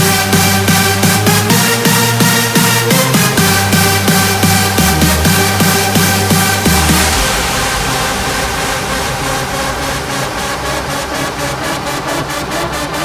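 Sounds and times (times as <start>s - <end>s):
drum roll: 0.0s - 13.0s
house music build-up: 0.0s - 13.0s
rising white-noise sweep: 0.0s - 13.0s.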